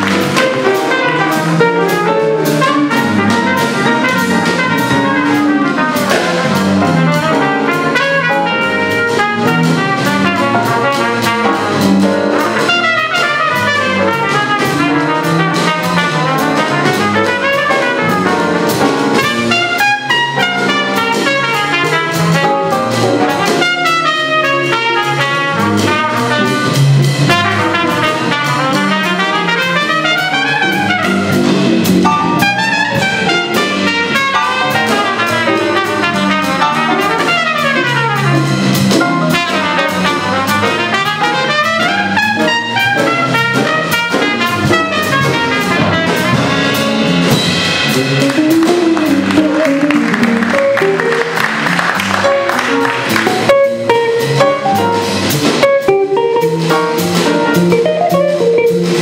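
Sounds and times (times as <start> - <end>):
drum kit: 0.0 - 59.0
electric bass: 0.0 - 59.0
piano: 0.0 - 59.0
trumpet: 0.0 - 59.0
electric guitar: 55.7 - 56.6, 57.6 - 59.0.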